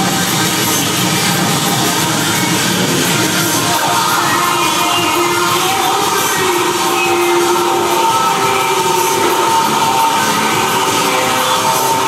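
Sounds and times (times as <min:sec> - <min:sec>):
experimental noise music: 0:00.0 - 0:12.0
held drone tones: 0:03.5 - 0:12.0.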